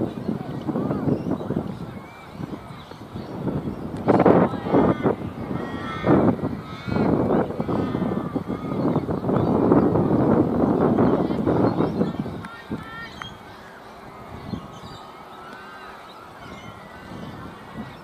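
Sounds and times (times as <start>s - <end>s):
young voices shouting: 4.1s - 10.2s, 11.0s - 18.0s.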